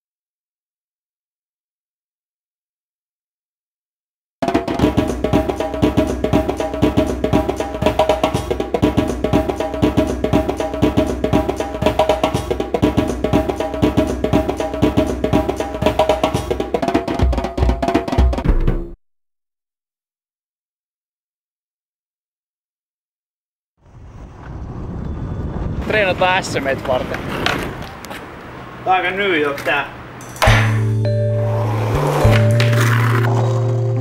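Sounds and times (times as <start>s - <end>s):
soundtrack music with drums: 4.4s - 19.0s.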